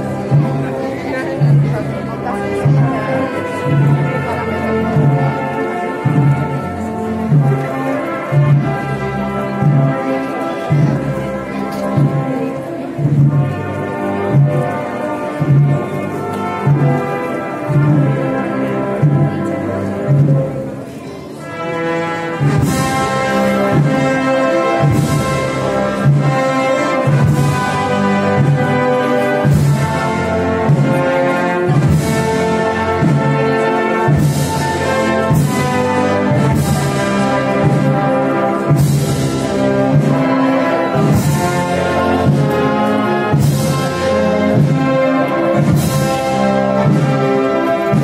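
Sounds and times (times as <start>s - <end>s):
low brass notes: 0.0s - 48.0s
wind band playing slow march: 0.0s - 48.0s.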